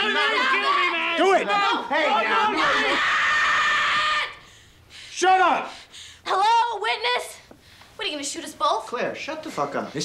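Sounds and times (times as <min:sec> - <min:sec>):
young woman screaming: 0:02.5 - 0:04.4.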